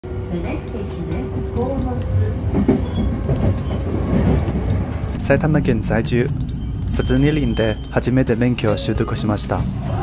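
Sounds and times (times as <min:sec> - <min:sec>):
train wheels rumbling on track: 0:00.0 - 0:10.0.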